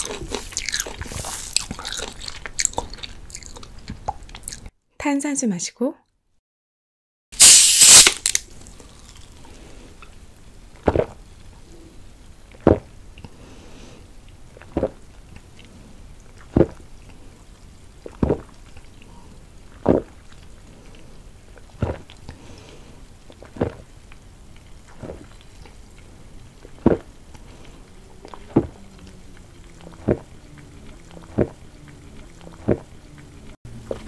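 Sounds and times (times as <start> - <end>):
swallowing gulps: 0.0 - 4.7, 14.5 - 15.1, 16.3 - 16.9, 18.0 - 20.5, 21.5 - 22.4, 23.3 - 23.9, 24.8 - 34.0
sparkling water bottle fizzing: 7.4 - 8.4.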